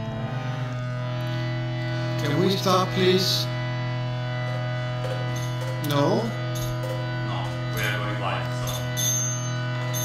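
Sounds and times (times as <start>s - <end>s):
harmonium drone chord: 0.0s - 10.0s.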